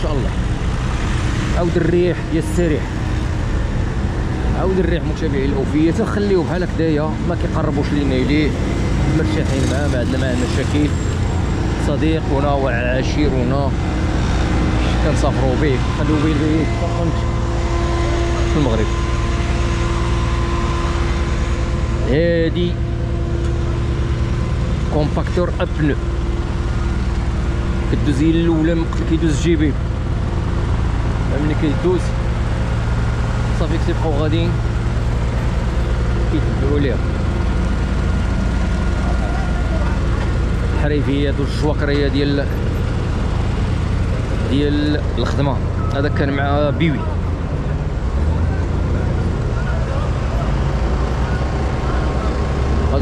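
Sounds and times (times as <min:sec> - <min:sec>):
diesel roller engine humming: 0:00.0 - 0:53.0.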